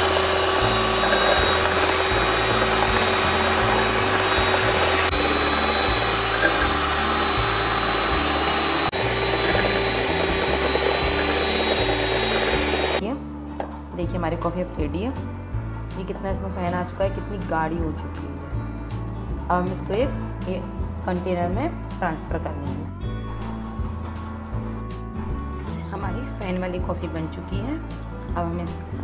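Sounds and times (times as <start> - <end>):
electric hand mixer whirring: 0.0 - 13.0.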